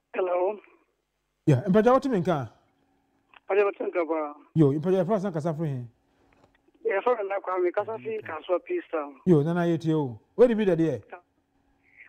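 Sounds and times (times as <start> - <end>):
person talking over telephone: 6.8 - 11.3.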